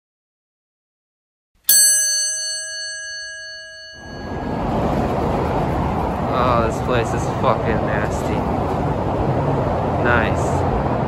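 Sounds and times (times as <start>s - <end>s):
bell-like chime: 1.7s - 5.5s
freeway traffic: 2.4s - 11.0s.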